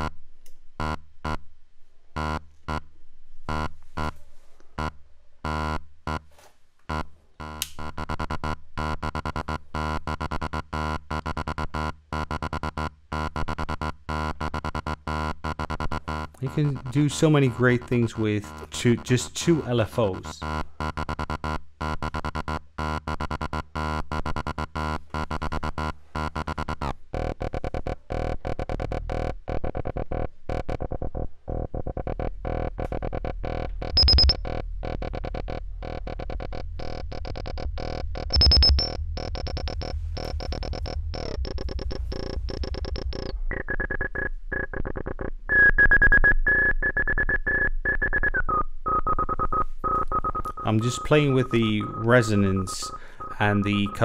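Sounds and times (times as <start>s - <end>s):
pulsing modular synth tone: 6.9s - 54.0s
steady resonant synth tone: 33.4s - 45.7s.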